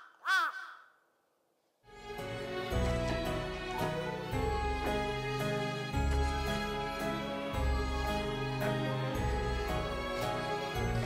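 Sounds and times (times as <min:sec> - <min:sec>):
crow cawing: 0:00.0 - 0:01.1
soft music: 0:01.9 - 0:11.0.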